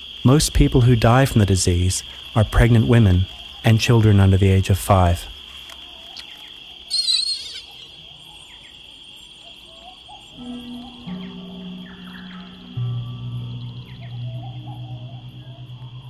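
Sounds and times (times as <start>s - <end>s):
high insect-like drone: 5.3s - 16.0s
low sustained music notes: 9.8s - 16.0s.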